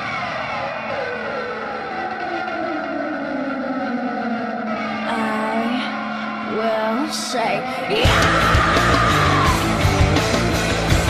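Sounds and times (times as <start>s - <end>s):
distorted electric guitar: 4.7s - 11.0s.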